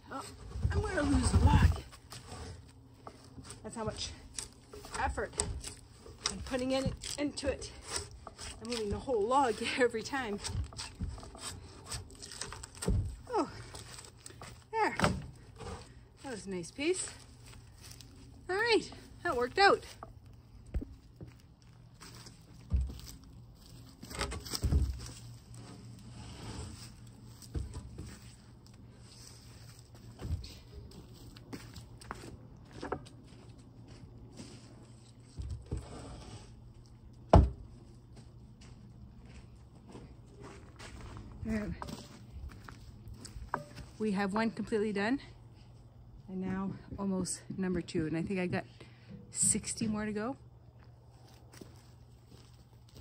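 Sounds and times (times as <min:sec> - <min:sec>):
drawknife scraping a log: 0:04.3 - 0:12.9.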